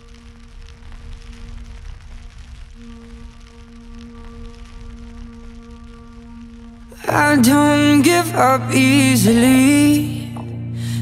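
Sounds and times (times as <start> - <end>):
rain-like hiss with crackle: 0.0 - 11.0.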